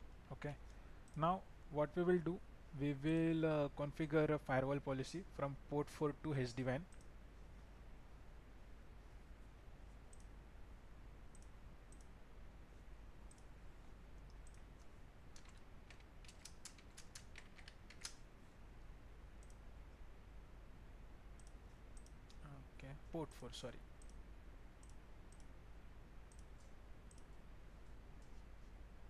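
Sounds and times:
low steady hum: 0.0 - 29.0
faint mouse clicks: 6.8 - 7.2, 9.9 - 10.4, 11.3 - 12.2, 13.2 - 13.5, 14.2 - 18.2, 19.4 - 19.6, 21.4 - 22.5, 24.0 - 24.2, 24.8 - 25.6, 26.3 - 28.7
keyboard typing: 14.3 - 18.2.

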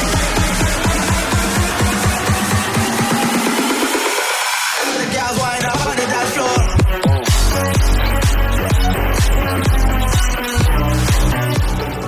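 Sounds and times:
electronic dance music: 0.0 - 12.0
repeating bass pulse: 6.6 - 12.0.

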